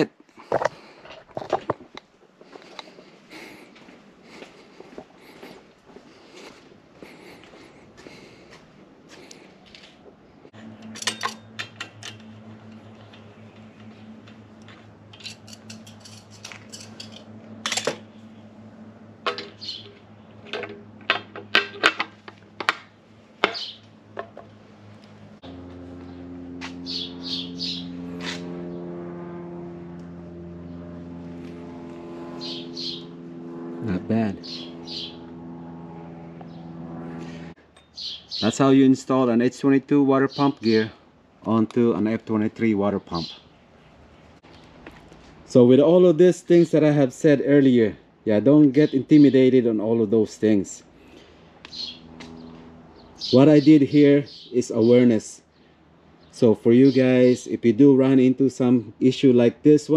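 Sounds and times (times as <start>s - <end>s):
steady low hum: 0.0s - 59.9s
metal clinks and knocks: 10.6s - 12.8s, 15.1s - 18.0s, 19.2s - 22.8s.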